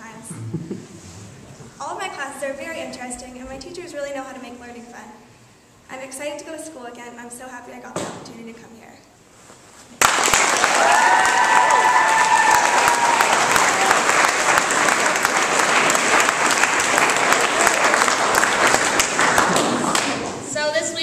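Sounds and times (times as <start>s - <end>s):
audience clapping: 10.0s - 20.3s
person cheering: 10.7s - 14.1s.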